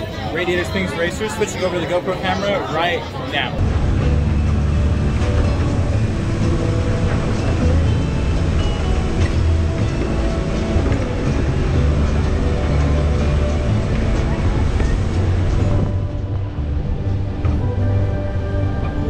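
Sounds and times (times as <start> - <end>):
ride car rumbling along track: 0.0 - 19.0.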